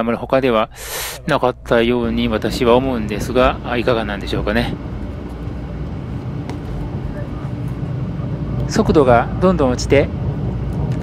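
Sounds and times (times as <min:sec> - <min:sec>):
faint hum: 0:00.0 - 0:11.0
train wheels rumbling on track: 0:00.0 - 0:11.0.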